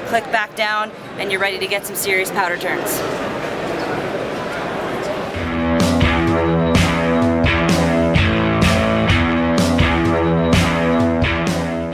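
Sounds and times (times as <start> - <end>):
crowd chatter in a hall: 0.0 - 8.2, 10.2 - 11.9
guitar music with a beat: 5.4 - 11.9.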